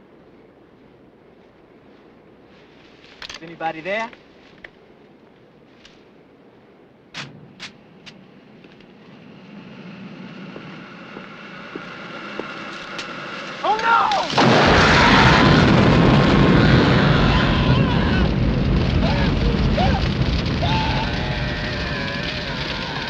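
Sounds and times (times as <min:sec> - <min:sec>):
flamethrower roar: 0:07.2 - 0:23.0
rising hiss: 0:07.2 - 0:23.0.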